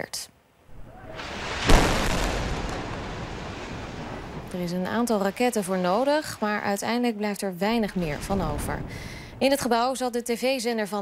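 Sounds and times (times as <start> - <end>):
explosion rumble: 0.7 - 5.6.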